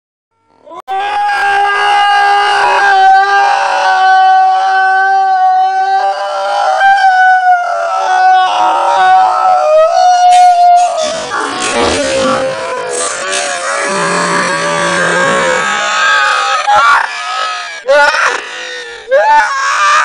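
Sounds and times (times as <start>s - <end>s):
man screaming: 0.7s - 20.0s.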